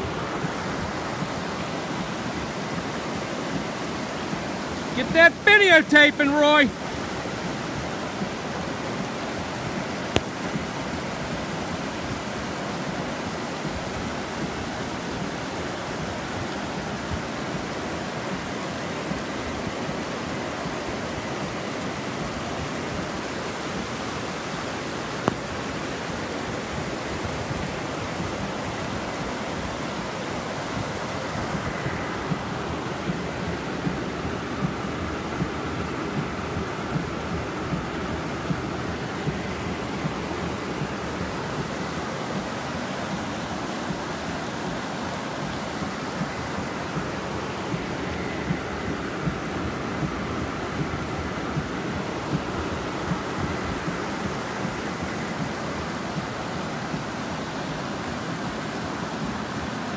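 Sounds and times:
floodwater rushing down a street: 0.0s - 59.9s
rain: 0.0s - 59.9s.

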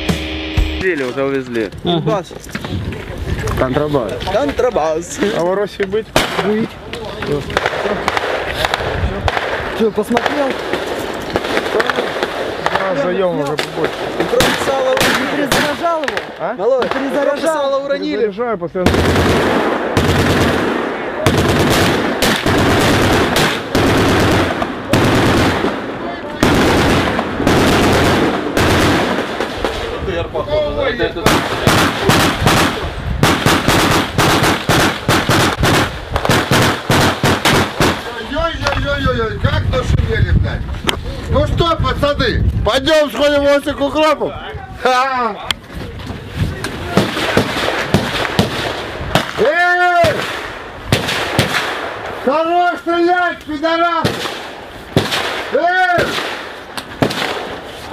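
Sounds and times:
sharp gunshots: 6.1s - 6.7s, 7.3s - 17.5s, 18.8s - 30.1s, 31.1s - 38.3s, 46.8s - 52.6s, 53.7s - 57.9s
automatic gunfire: 18.9s - 29.7s, 31.2s - 38.1s.

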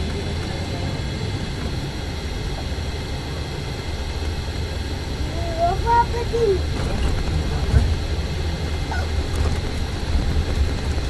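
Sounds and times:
bus engine and road noise: 0.0s - 11.0s.

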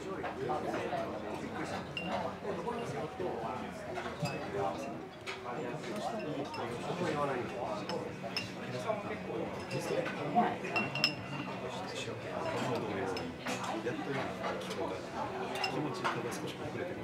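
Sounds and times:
cutlery clinking on plates: 1.9s - 2.9s, 9.6s - 11.5s, 15.5s - 16.2s.

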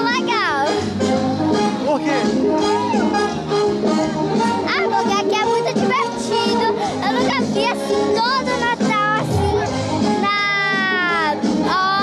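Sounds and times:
girl singing into a microphone: 4.6s - 12.0s.

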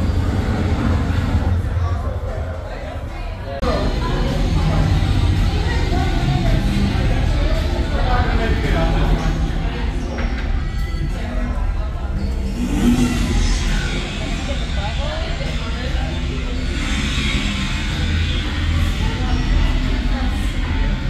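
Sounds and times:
low hum: 0.0s - 21.0s
people talking: 0.0s - 21.0s.

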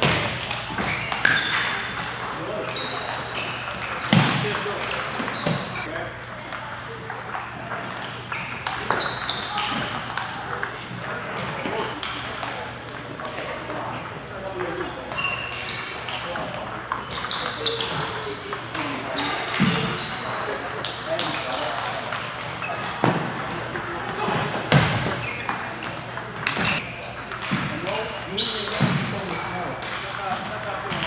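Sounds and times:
table tennis balls clicking: 0.0s - 11.2s
chatter in large hall: 0.0s - 31.0s.

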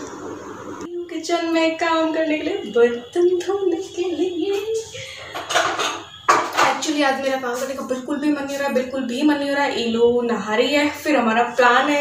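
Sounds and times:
metal dishes and cutlery clattering: 5.2s - 6.8s.

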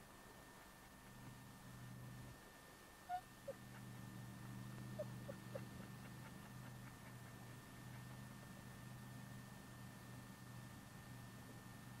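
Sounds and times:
steady low hum: 0.0s - 12.0s
dog whimpering: 3.1s - 3.9s, 5.0s - 7.3s.

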